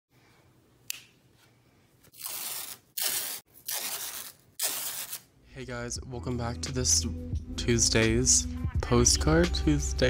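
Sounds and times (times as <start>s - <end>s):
masking tape pulled off roll: 2.1s - 5.3s.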